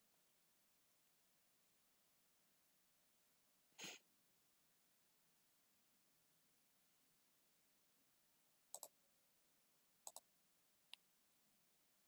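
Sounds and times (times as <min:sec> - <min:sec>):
computer mouse clicks: 0:08.7 - 0:09.0, 0:10.0 - 0:10.3.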